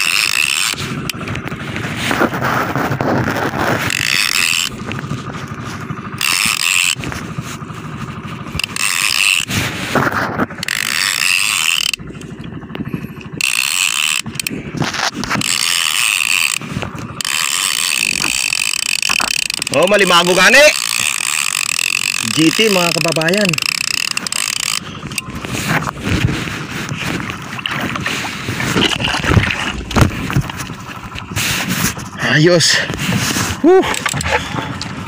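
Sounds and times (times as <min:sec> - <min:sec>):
fishing reel gears ratcheting: 0:00.0 - 0:35.0.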